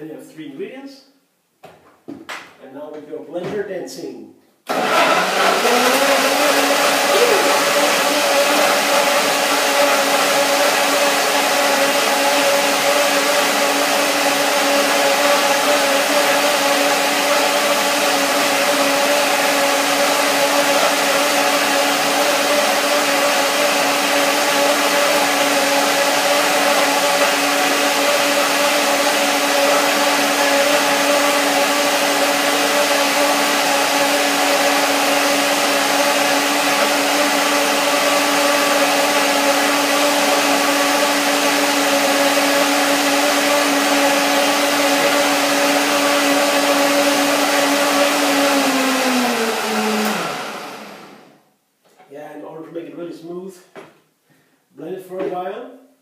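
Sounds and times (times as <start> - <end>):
blender motor whirring: 4.7 - 51.4.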